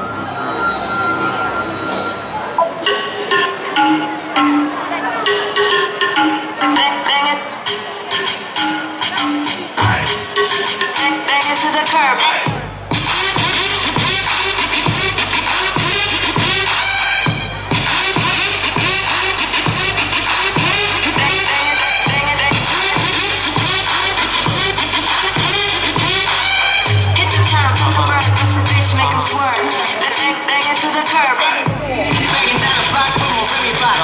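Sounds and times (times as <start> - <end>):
hip-hop dance music: 2.6 - 34.0
heavy bass: 9.0 - 10.8, 12.4 - 30.0, 31.6 - 34.0.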